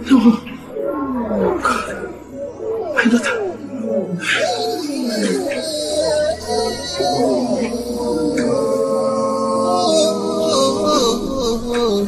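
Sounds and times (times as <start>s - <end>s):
woman wailing and sobbing: 1.3s - 12.0s.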